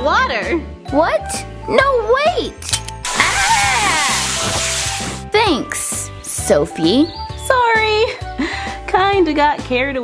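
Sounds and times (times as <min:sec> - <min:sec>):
background music: 0:00.0 - 0:10.0
garden hose spraying water: 0:03.0 - 0:05.3
high voice crying out: 0:03.1 - 0:04.4.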